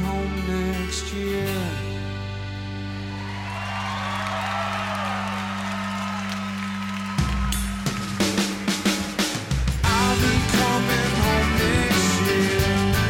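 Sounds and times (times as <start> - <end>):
drums playing hard: 7.1 - 13.0.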